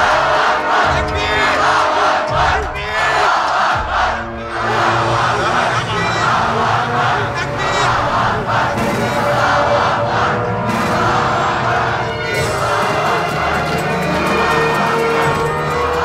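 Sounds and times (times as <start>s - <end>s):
crowd shouting together: 0.0s - 16.0s
film music: 0.0s - 16.0s.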